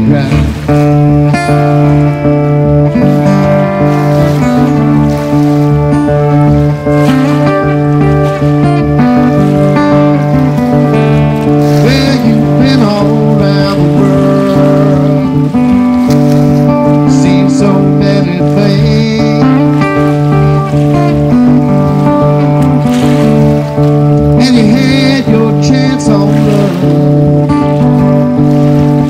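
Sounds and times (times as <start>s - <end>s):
acoustic guitar strumming: 0.0s - 29.0s
fiddle playing bowed lines: 0.0s - 29.0s.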